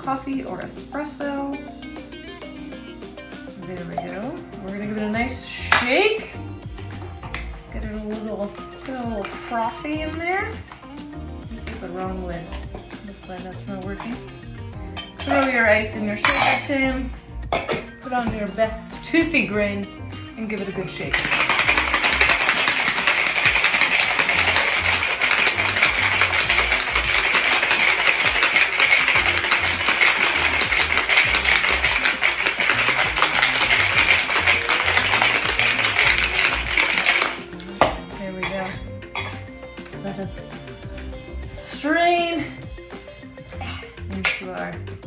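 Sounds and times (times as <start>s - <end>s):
ice rattling in cocktail shaker: 21.0s - 37.5s.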